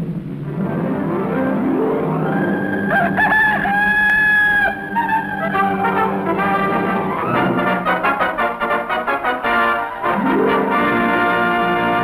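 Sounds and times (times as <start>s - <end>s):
rooster crowing: 2.2s - 8.4s.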